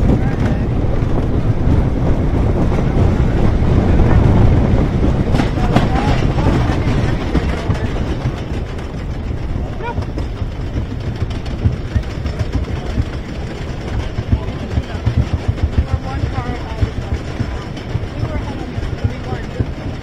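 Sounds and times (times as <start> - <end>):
faint voices of riders: 0.0 - 20.0
roller coaster chain lift rumble: 0.0 - 20.0
chain and track clattering: 5.3 - 20.0.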